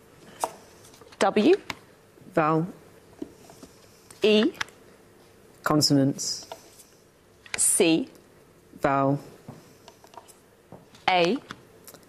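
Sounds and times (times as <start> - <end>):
person speaking: 4.2 - 4.7, 10.9 - 11.6.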